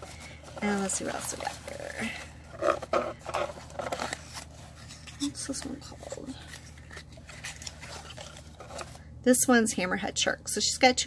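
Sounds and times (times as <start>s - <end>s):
shredded paper rustling: 0.0s - 9.0s.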